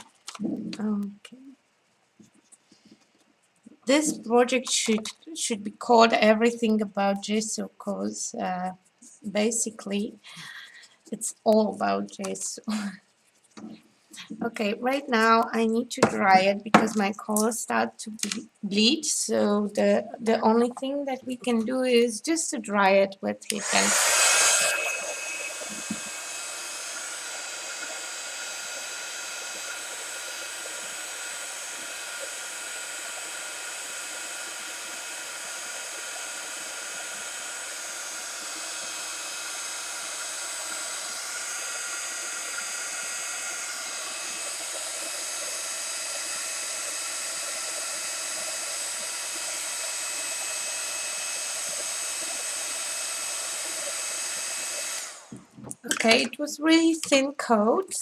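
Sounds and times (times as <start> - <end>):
heat tool blowing: 23.5 - 55.6.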